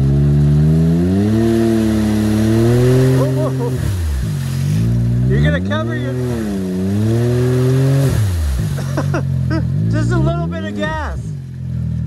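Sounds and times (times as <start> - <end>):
engine revving: 0.0 - 12.0.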